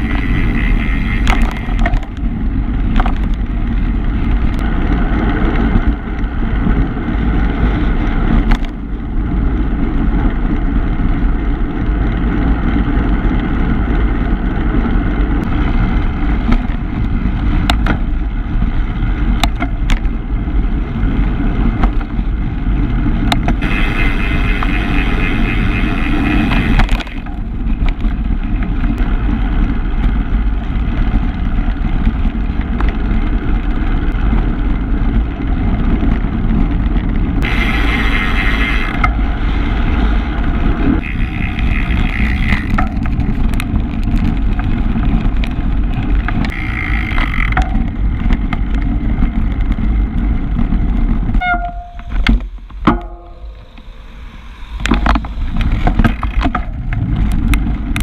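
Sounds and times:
bicycle tyre and road noise: 0.0s - 58.0s
wind on microphone: 0.0s - 58.0s.

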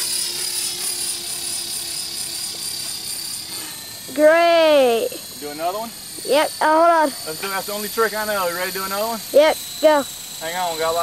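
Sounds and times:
toy helicopter motor whine: 0.0s - 11.0s.

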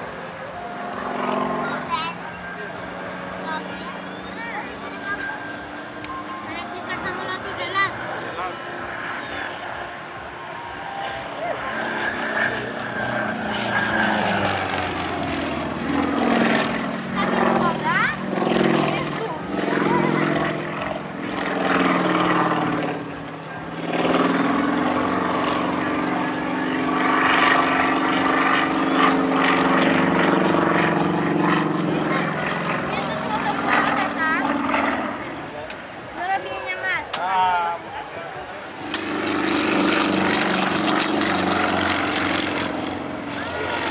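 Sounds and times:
propeller plane engine: 0.0s - 43.9s.

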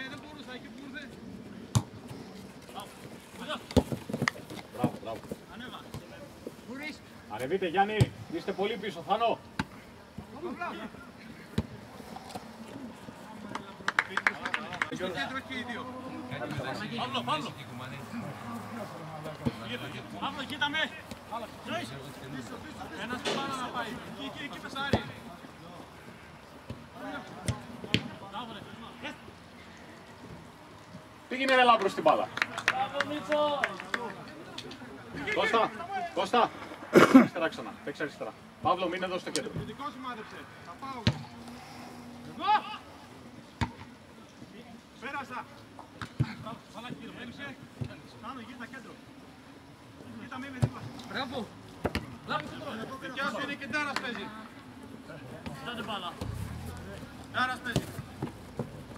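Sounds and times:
football kicked: 1.7s - 1.9s.

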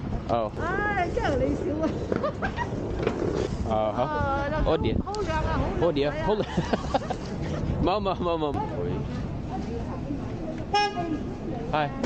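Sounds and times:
street traffic murmur: 0.0s - 12.0s
car horn toot: 10.7s - 11.3s.

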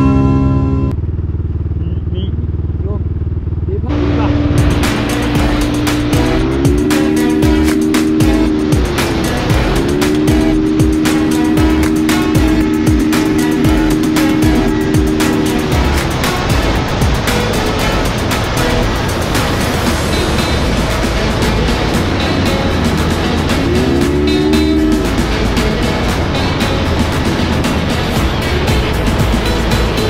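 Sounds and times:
motor scooter engine running: 0.0s - 30.0s
music with a beat: 4.0s - 30.0s.

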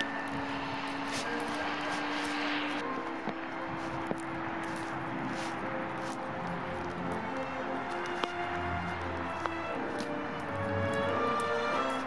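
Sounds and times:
distant city traffic hiss: 0.0s - 12.0s.

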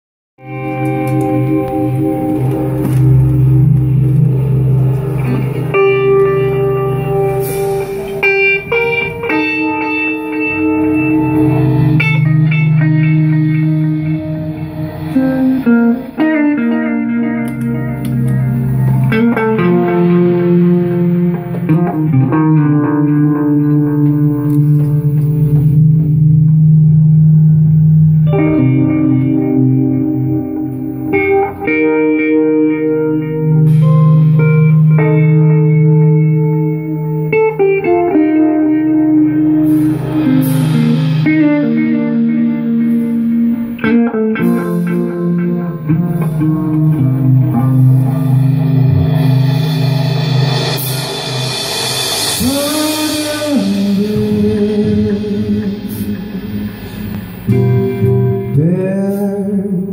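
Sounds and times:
sustained low note: 0.4s - 31.1s, 38.5s - 59.7s
electric guitar long notes: 0.4s - 59.9s
drums and cymbals: 6.7s - 16.3s, 39.4s - 45.1s, 47.7s - 59.4s.

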